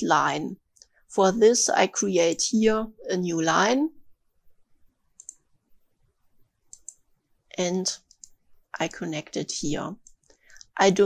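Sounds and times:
computer mouse click: 0:05.2 - 0:05.4, 0:06.7 - 0:07.0, 0:08.0 - 0:08.4, 0:10.0 - 0:10.7.

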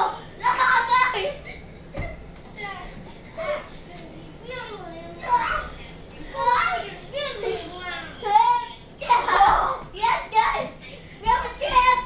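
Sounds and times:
children yelling and squealing: 0:00.0 - 0:01.6, 0:04.4 - 0:12.0.

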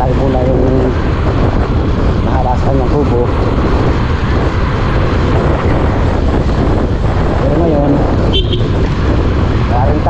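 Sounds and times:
motorcycle engine drone: 0:00.0 - 0:10.0
wind rush on microphone: 0:00.0 - 0:10.0.

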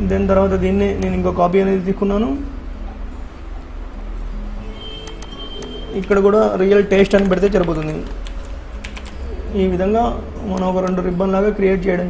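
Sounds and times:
computer keyboard typing: 0:04.8 - 0:09.4
person speaking: 0:05.5 - 0:12.0.

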